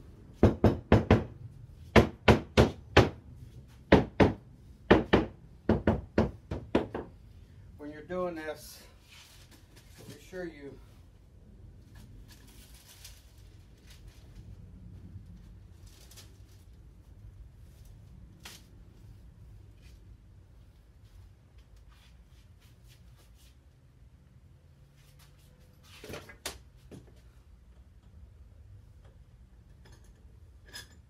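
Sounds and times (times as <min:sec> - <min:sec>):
low steady hum: 0:00.0 - 0:25.8.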